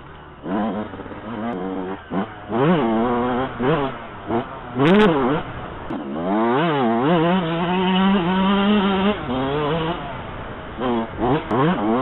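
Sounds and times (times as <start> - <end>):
two-stroke motocross engine revving: 0.0 - 12.0.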